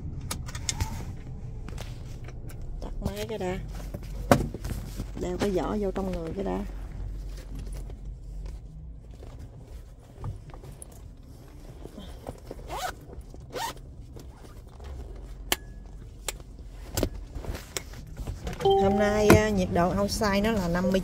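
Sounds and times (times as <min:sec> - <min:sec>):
zipper pulls: 0:12.6 - 0:14.6.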